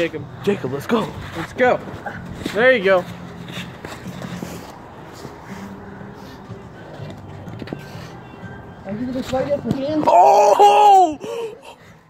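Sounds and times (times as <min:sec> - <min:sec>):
people scuffling on paving stones: 0:00.2 - 0:10.5.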